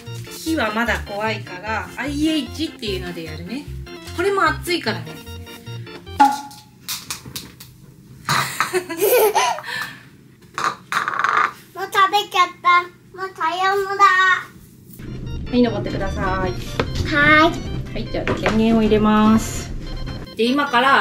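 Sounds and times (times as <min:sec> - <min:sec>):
background music: 0:00.0 - 0:06.8, 0:15.0 - 0:21.0.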